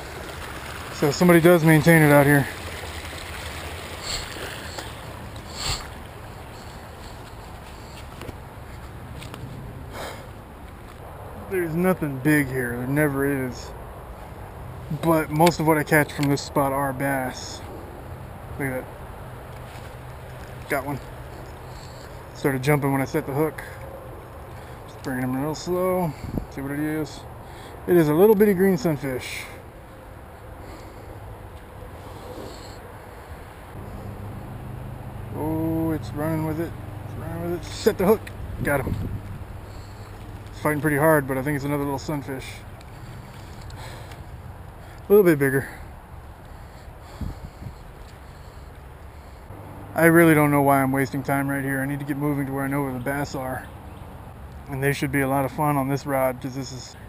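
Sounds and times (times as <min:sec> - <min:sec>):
low continuous rumble: 0:00.0 - 0:57.0
footsteps on dirt and leaves: 0:03.3 - 0:11.1
wind rumble on microphone: 0:26.1 - 0:26.6, 0:38.2 - 0:39.9, 0:47.1 - 0:48.1.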